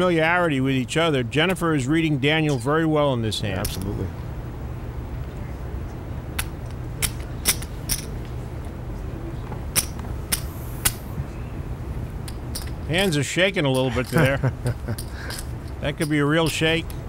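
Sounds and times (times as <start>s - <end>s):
low steady hum: 0.0s - 17.0s
clay poker chips clicking: 6.4s - 8.1s.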